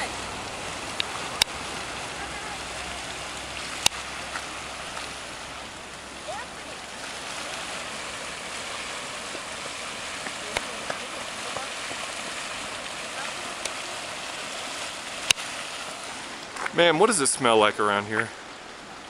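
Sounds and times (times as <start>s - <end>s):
rushing water and steam hiss: 0.0s - 19.0s.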